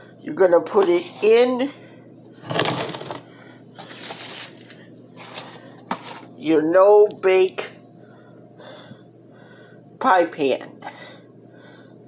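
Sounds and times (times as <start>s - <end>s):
rustling on kitchen counter: 2.4s - 6.4s.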